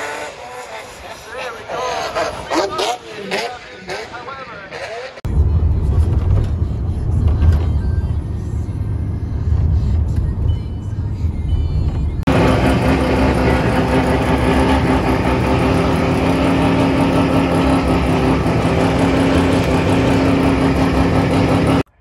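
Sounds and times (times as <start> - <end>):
low rumble of van cabin: 5.3 - 12.5
rotary engine idling loudly: 12.3 - 21.9.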